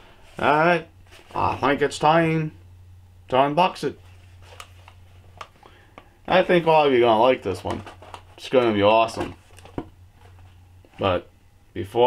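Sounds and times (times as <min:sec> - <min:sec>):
low hum: 0:00.0 - 0:08.4.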